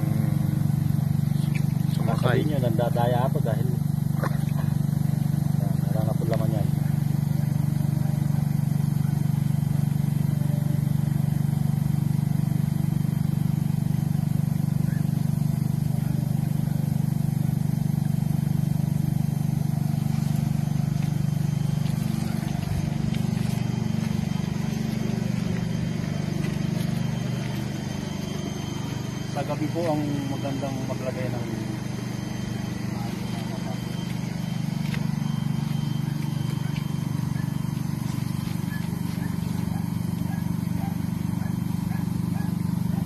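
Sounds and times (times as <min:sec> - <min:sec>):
air blower droning: 0:00.0 - 0:43.0.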